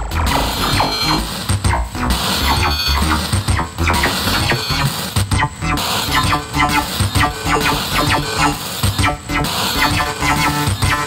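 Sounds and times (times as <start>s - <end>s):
distorted drum machine beat: 0.0s - 11.0s
synthesizer sequence: 0.0s - 11.0s.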